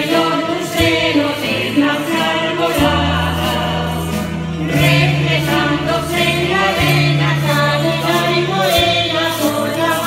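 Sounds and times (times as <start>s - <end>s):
strummed guitars: 0.0s - 10.0s
voices singing together: 0.0s - 10.0s
low bass line: 2.6s - 9.6s.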